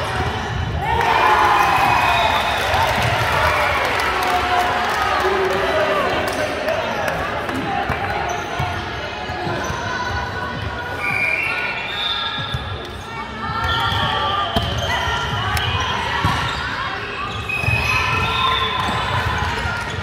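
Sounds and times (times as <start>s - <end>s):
voices in echoing gym: 0.0s - 20.0s.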